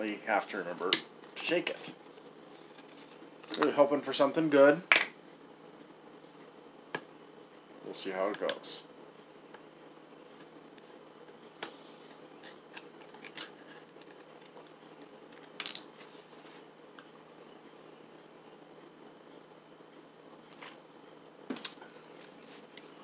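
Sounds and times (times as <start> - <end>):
low room hum: 0.0 - 23.0.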